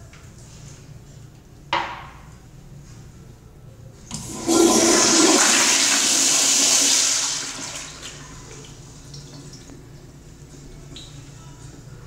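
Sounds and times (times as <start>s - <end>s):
toilet flushing: 4.1s - 9.7s.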